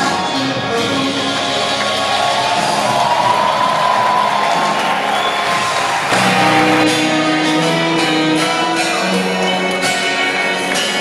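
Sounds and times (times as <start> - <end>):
crowd cheering and whooping: 1.8 - 7.0
rock band final notes ringing: 5.7 - 9.9.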